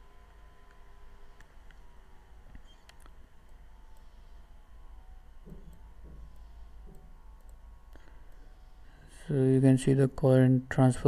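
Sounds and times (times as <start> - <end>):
low steady hum: 0.0 - 11.0
computer mouse clicks: 2.5 - 4.1, 5.5 - 7.6.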